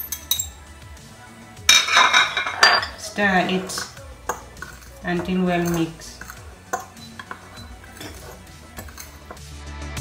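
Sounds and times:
cutlery clinking on dishes: 0.0 - 0.6, 1.7 - 9.5.

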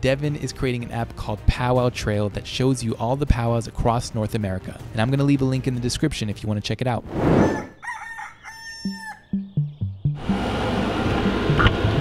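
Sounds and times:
rooster crowing: 7.4 - 9.4
music with low beat: 8.9 - 12.0.

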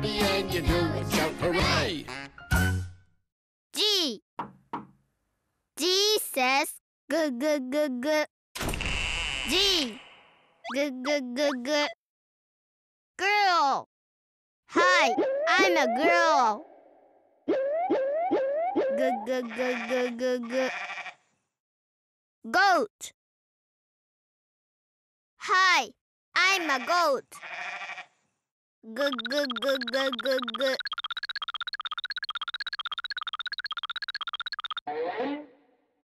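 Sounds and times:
person speaking: 19.0 - 20.7, 28.9 - 31.2
goat bleating: 19.3 - 21.2, 26.6 - 28.1
call rising and falling in pitch: 29.0 - 34.8.

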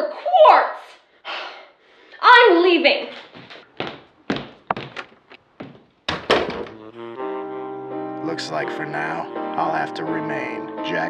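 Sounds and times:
footsteps clicking on floor: 3.1 - 6.8
door shutting thunks: 4.4 - 6.9.

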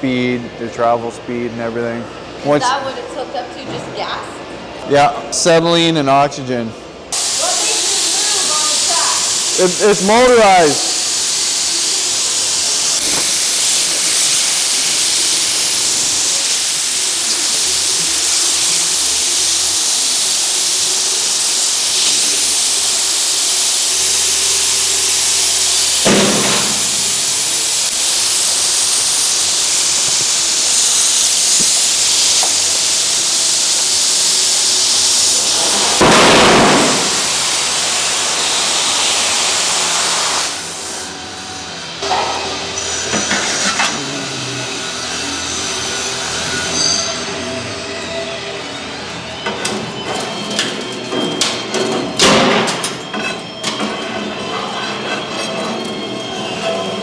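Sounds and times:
cutting torch hissing: 7.1 - 53.8.

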